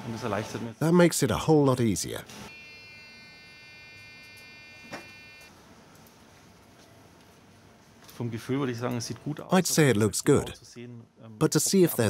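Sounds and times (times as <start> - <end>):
electronic buzzer tone: 2.5 - 5.5.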